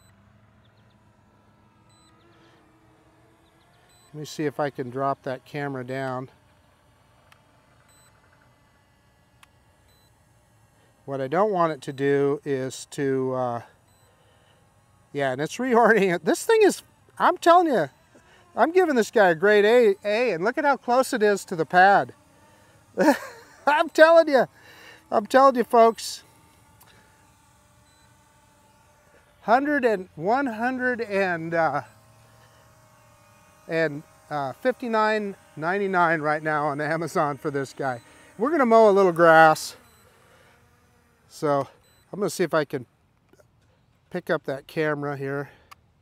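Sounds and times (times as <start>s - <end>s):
faint low hum: 0.0s - 44.7s.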